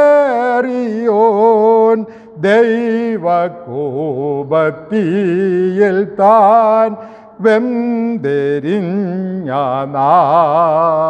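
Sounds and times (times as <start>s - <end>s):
man singing a hymn solo: 0.0s - 11.0s
short breath: 2.1s - 2.4s, 7.0s - 7.4s.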